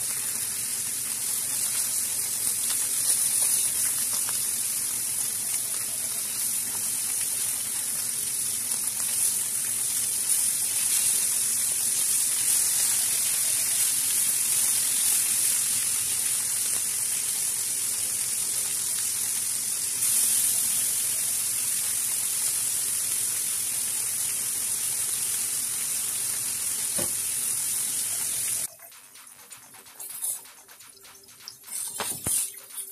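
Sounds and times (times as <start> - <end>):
food sizzling in oil: 0.0 - 32.9.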